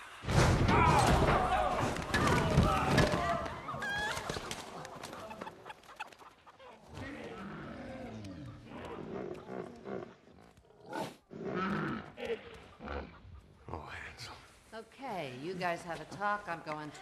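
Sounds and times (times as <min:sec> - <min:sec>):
pig grunting: 0:06.8 - 0:13.9.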